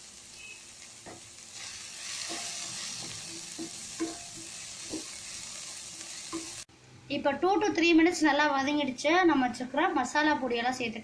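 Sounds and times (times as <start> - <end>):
vegetables sizzling in a pan: 0.0 - 6.7
utensil knocking against pan: 2.3 - 5.1.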